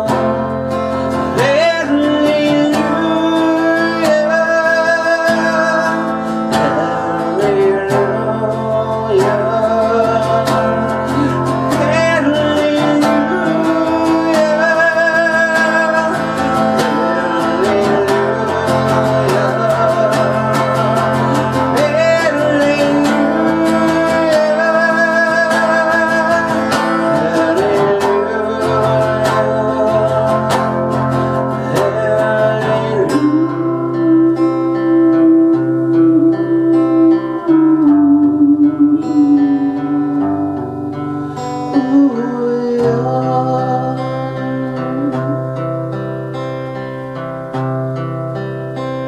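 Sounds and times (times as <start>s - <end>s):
man singing: 0.0s - 46.1s
strummed acoustic guitar: 0.0s - 49.0s.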